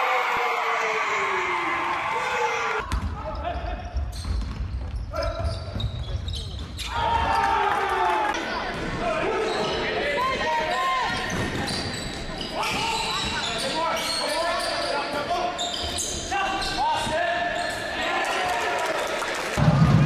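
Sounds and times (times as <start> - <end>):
sneakers squeaking: 2.9 - 7.3, 10.8 - 18.0.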